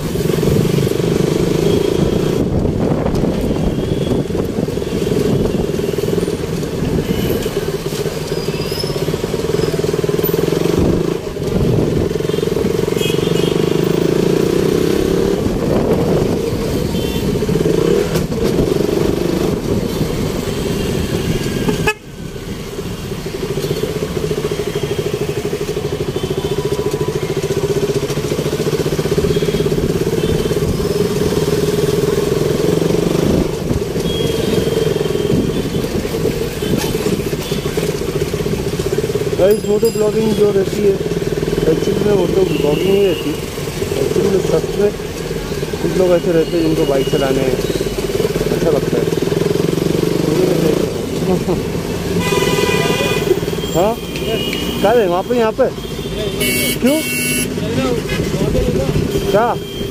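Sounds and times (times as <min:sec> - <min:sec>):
motorcycle engine running: 0:00.0 - 0:22.0, 0:22.6 - 0:53.9
vehicle horns honking: 0:12.2 - 0:13.9, 0:16.8 - 0:17.7, 0:19.9 - 0:22.2, 0:29.0 - 0:31.0, 0:34.0 - 0:37.9, 0:42.2 - 0:43.6, 0:52.0 - 0:58.1, 0:58.9 - 0:59.9.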